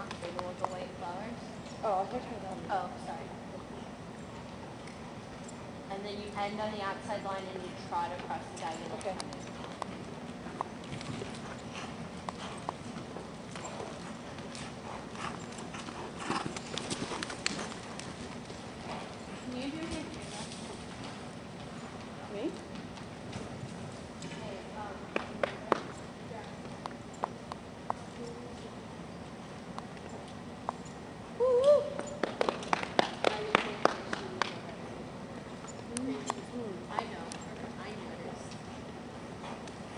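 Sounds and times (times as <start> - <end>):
horse hoofbeats on dirt: 1.9 - 31.3
spectators clapping: 32.1 - 34.6.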